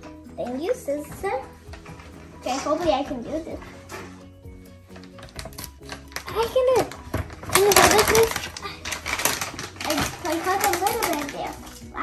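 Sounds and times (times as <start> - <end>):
child's wordless voice: 2.4 - 3.8, 9.8 - 12.0
plastic bag crinkling: 4.9 - 12.0.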